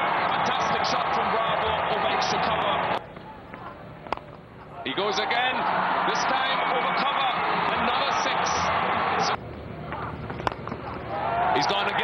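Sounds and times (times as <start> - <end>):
crowd cheering: 0.0 - 3.0, 4.9 - 9.4, 11.1 - 12.0.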